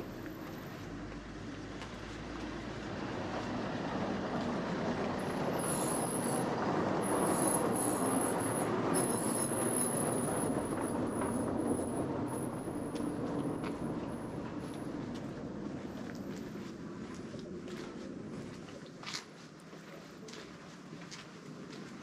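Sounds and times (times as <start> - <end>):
vehicle passing rushing noise: 2.1 - 15.7
thin high tone: 5.2 - 14.4.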